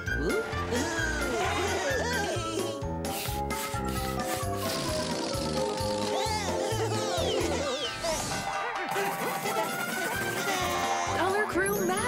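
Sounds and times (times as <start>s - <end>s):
children's background music: 0.0s - 12.0s
hand pump rasping hiss: 3.0s - 6.3s.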